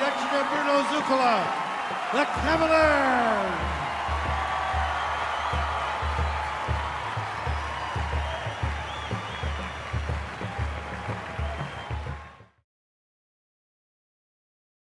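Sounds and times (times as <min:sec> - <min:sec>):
stadium crowd applauding and cheering: 0:00.0 - 0:12.6.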